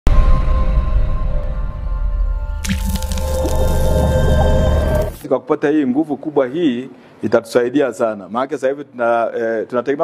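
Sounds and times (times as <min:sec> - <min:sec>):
logo intro music: 0:02.5 - 0:05.2
sudden high sound effect: 0:02.6 - 0:05.2.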